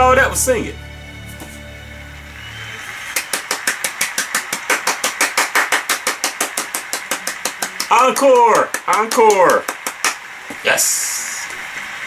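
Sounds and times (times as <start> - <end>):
low music notes: 0.0 - 3.0
person clapping hands: 3.1 - 10.3.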